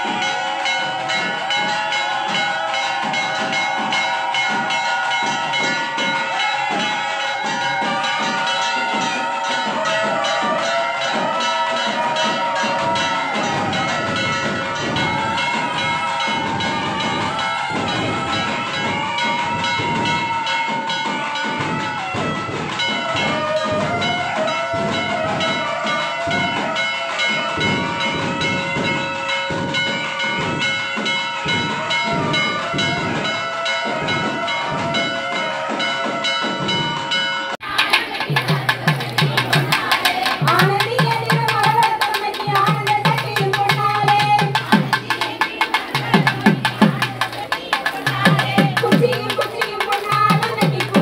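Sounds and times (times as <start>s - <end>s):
bells ringing: 0.0s - 51.0s
fast rhythmic drum beats: 0.0s - 51.0s.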